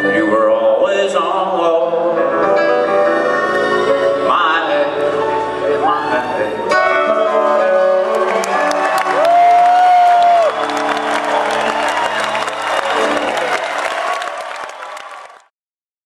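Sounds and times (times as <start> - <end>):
live country band playing: 0.0 - 13.8
crowd clapping and cheering: 7.9 - 15.5.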